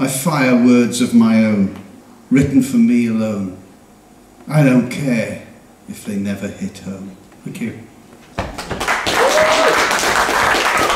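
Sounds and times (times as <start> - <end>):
audience applause: 8.6 - 10.9.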